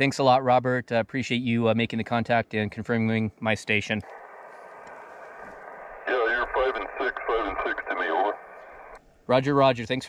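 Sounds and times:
radio receiver hiss: 3.9 - 9.0
voice through radio speaker: 6.0 - 8.4.

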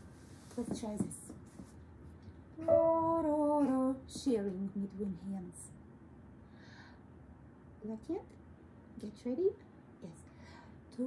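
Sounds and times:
woman singing a long note: 2.6 - 4.0.

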